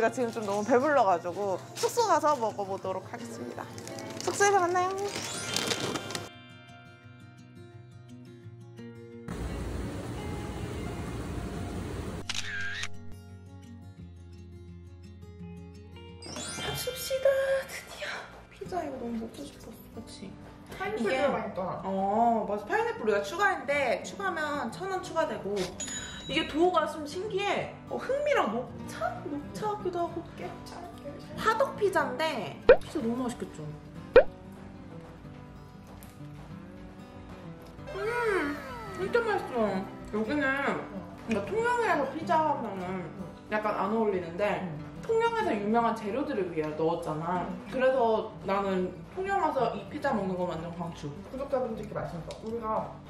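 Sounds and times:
background music: 0:00.0 - 0:53.0
camera shutter sound effect: 0:12.2 - 0:13.2.

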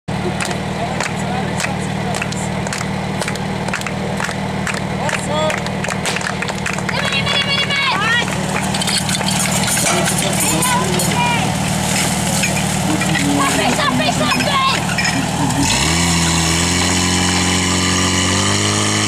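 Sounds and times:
small petrol engine running: 0:00.1 - 0:19.0.

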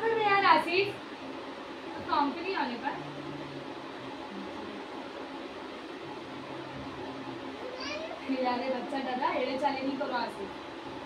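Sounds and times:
faint constant hum: 0:00.0 - 0:11.0
steady hiss: 0:00.0 - 0:11.0.

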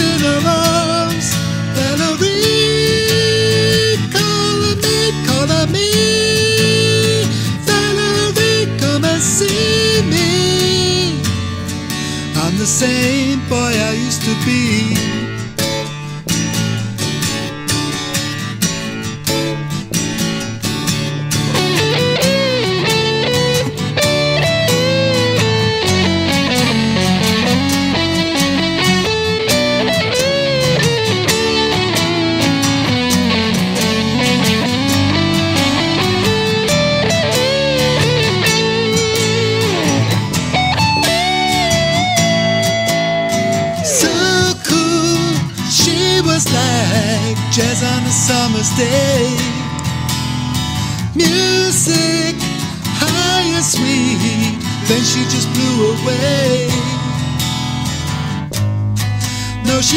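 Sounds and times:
strummed acoustic guitar: 0:00.0 - 0:59.9
electric guitar solo: 0:14.6 - 0:59.9.

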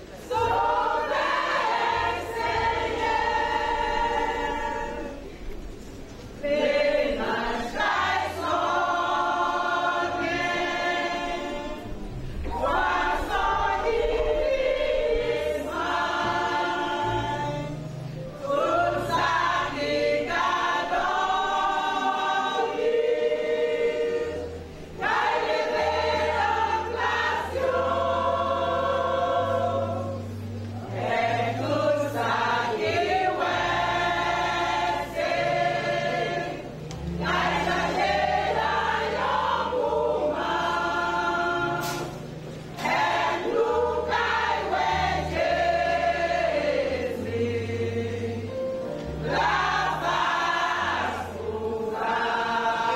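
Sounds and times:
church choir singing: 0:00.0 - 0:52.9.

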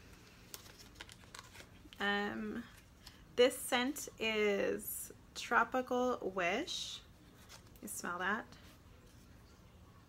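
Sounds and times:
cardboard box crinkling: 0:00.5 - 0:01.7.

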